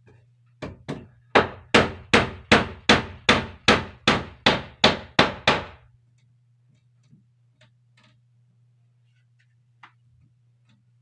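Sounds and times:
low steady hum: 0.0s - 11.0s
hammer striking wood: 0.6s - 5.8s.

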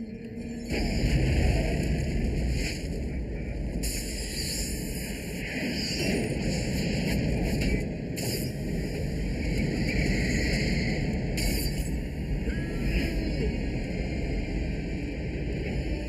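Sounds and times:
rushing rumbling noise: 0.5s - 16.0s.

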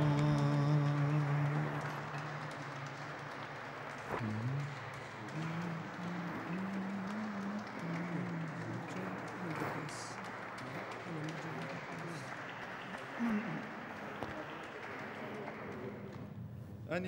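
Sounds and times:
low male chanting: 0.0s - 3.2s, 4.1s - 12.4s
scattered applause: 0.0s - 16.4s.

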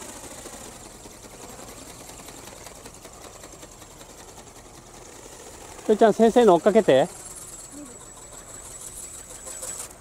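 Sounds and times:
small electric motor whine: 0.0s - 10.0s
thin high tone: 5.9s - 10.0s.

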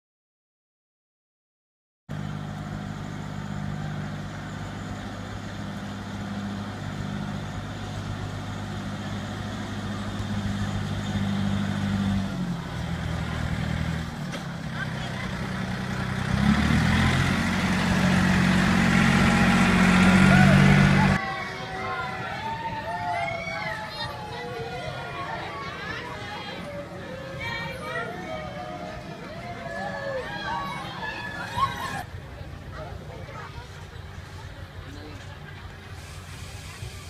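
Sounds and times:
small train engine running: 2.1s - 37.0s.

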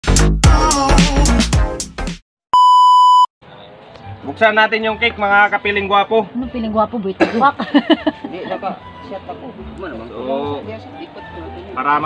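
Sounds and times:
music: 0.0s - 2.2s, 3.9s - 12.0s
electronic beep tone: 2.6s - 3.3s
faint outdoor background: 2.6s - 12.0s.

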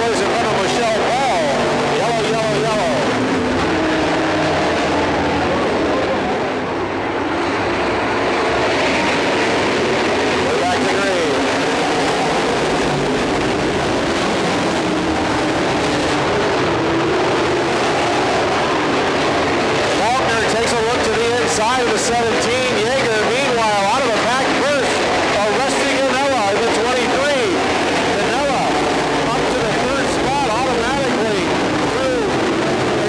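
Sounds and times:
announcer over loudspeaker: 0.0s - 3.4s, 19.9s - 33.0s
race car engines running: 0.0s - 33.0s.

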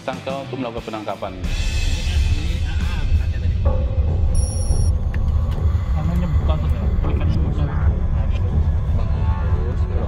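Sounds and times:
high electronic tone: 4.4s - 4.9s.

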